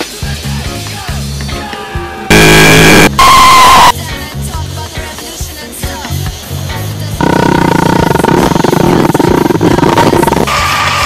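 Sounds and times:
harshly distorted noise blasts: 2.3s - 4.0s, 7.2s - 11.0s
steady high tone: 2.3s - 4.0s, 7.2s - 10.5s.

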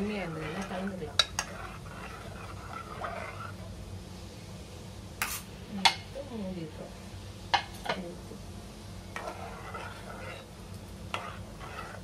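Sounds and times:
ladle stirring in water: 0.0s - 3.8s, 9.1s - 12.0s
steady low hum: 0.0s - 12.0s.

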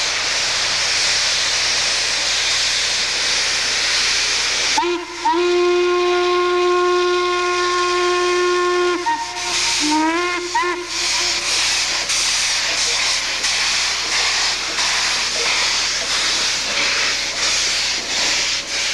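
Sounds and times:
steam hissing: 0.0s - 18.9s
steam locomotive whistle: 4.8s - 12.0s.

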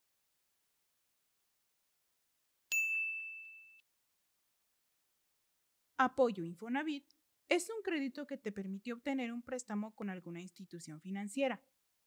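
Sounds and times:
bell-like ding: 2.7s - 3.8s.

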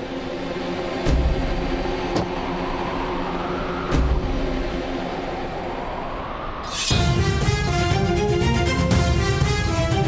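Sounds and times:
low rumbling drone score: 0.0s - 10.0s
rising whoosh: 0.8s - 7.6s.

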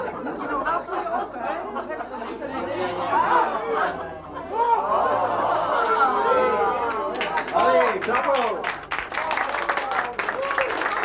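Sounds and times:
audience chatter: 0.0s - 8.1s.

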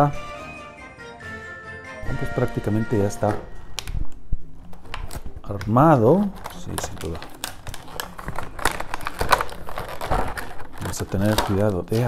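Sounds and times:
plastic packaging crackling: 2.5s - 12.0s.

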